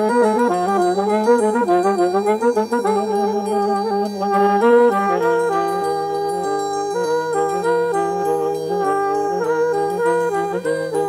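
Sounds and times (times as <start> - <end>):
reed horns playing jazz: 0.0 - 11.0.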